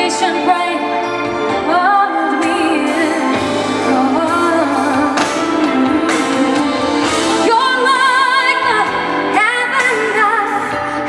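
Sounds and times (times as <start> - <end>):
band accompaniment: 0.0 - 11.0
woman singing pop ballad: 0.0 - 11.0.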